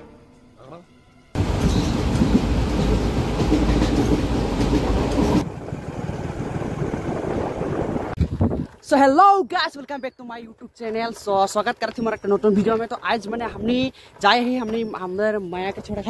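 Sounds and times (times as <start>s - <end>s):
train rushing rumble: 1.4s - 8.2s.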